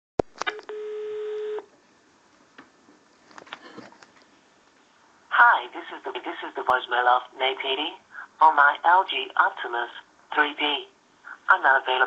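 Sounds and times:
electronic telephone beep: 0.6s - 1.6s.

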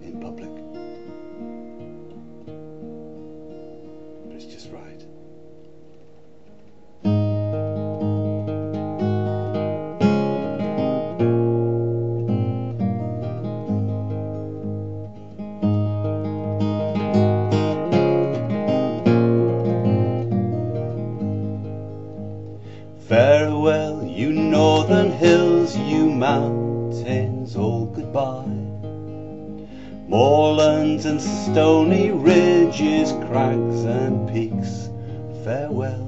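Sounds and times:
fingerstyle acoustic guitar: 0.0s - 36.0s.

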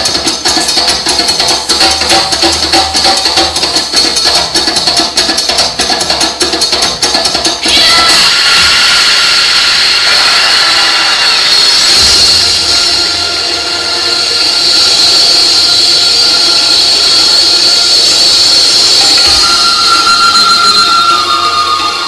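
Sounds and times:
percussion music: 0.0s - 22.0s
rushing drone: 7.6s - 22.0s
faint high held tones: 19.0s - 22.0s.

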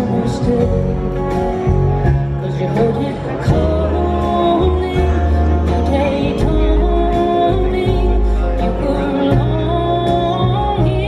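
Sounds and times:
guitars: 0.0s - 11.0s
live country band playing: 0.0s - 11.0s.

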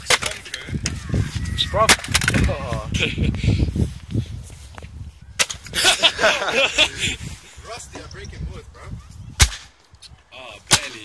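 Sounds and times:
loud laughter: 2.7s - 3.7s, 5.7s - 7.3s.

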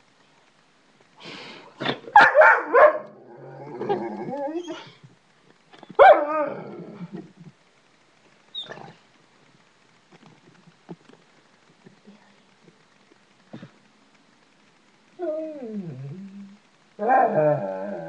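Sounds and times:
dog barking: 2.1s - 3.1s, 6.0s - 6.3s.

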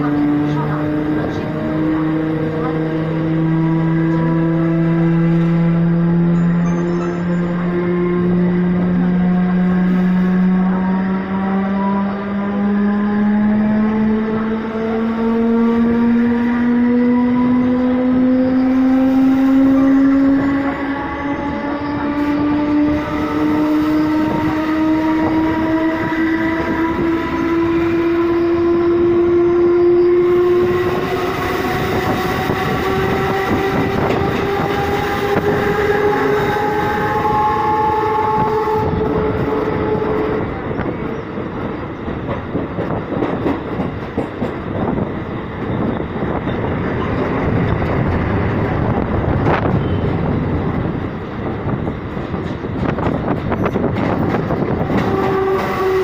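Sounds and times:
train motors whining: 0.0s - 56.0s
train wheels on rails: 0.0s - 56.0s
wind through doorway: 7.7s - 56.0s.

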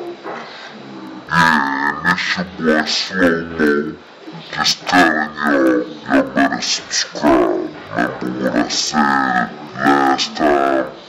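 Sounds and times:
man making deep drawn-out vocal sound: 0.8s - 11.0s.

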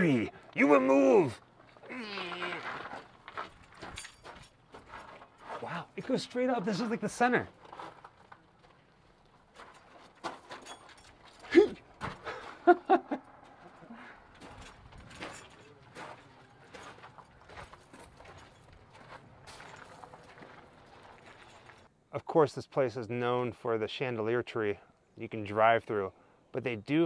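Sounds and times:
footsteps on gravel: 0.3s - 12.6s, 13.3s - 21.9s.

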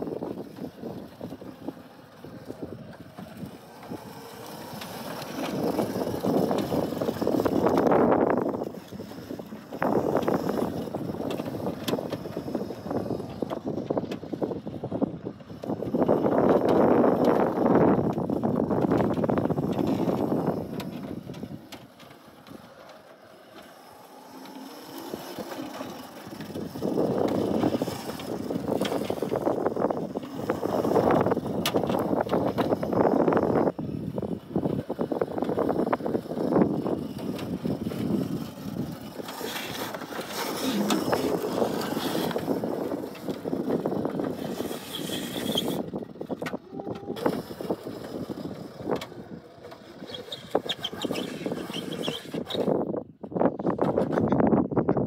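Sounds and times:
kart wheels rolling on concrete: 0.0s - 55.0s.

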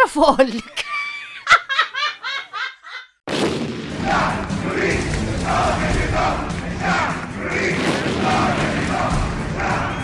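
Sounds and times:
woman laughing in cartoon voice: 0.5s - 3.2s.

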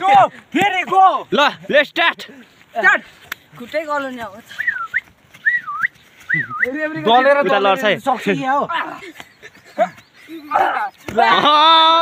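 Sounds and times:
young men shouting excitedly: 0.0s - 4.2s, 6.7s - 12.0s.

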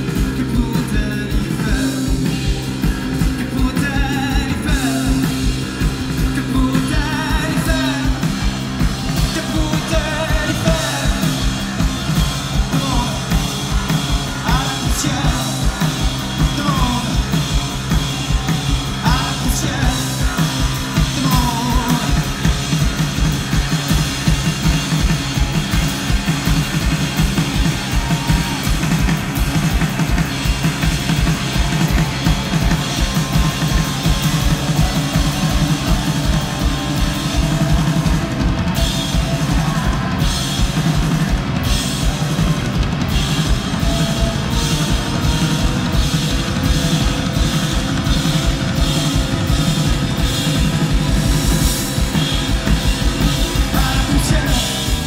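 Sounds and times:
rock band playing: 0.0s - 55.0s.

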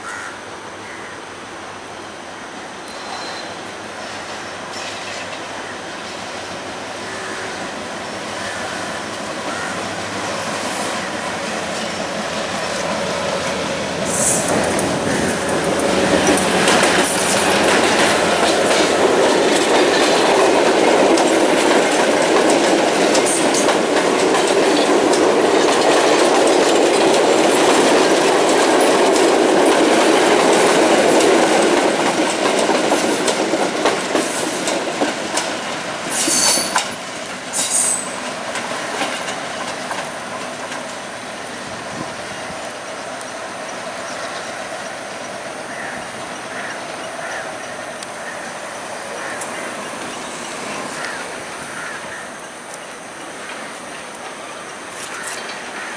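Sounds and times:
high-pitched wheel squeals: 2.8s - 3.6s
train wheels clattering: 8.3s - 43.4s, 45.7s - 55.9s.

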